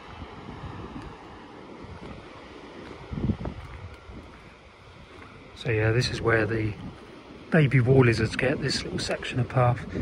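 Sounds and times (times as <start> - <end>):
distant sea surf: 0.0 - 10.0
wind on microphone: 0.0 - 10.0.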